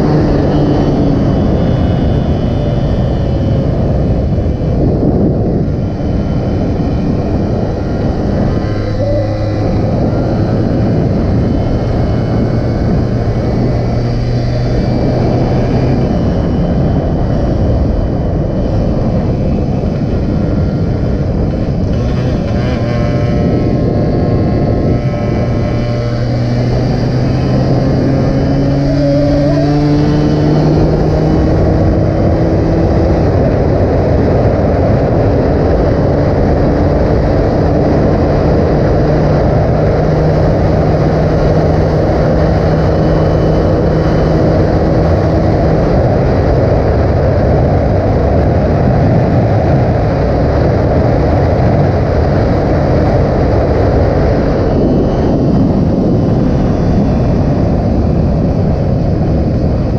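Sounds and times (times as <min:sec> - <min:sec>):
motorcycle engine at speed: 0:00.0 - 0:59.9
wind rush on microphone: 0:00.0 - 0:59.9.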